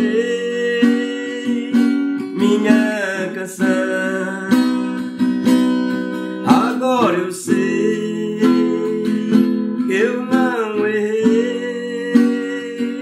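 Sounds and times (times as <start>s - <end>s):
acoustic guitar strumming: 0.0s - 13.0s
man singing: 0.0s - 13.0s.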